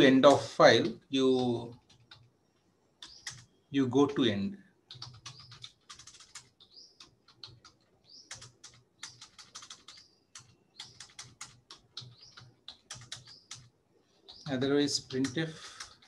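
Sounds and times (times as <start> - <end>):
computer keyboard typing: 1.2 - 2.3, 3.0 - 3.5, 4.9 - 16.0.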